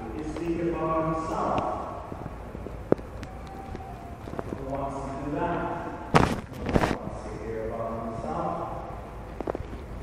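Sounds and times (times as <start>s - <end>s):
man speaking: 0.0s - 1.9s, 4.6s - 6.1s, 6.7s - 8.9s
low room noise: 0.0s - 10.0s.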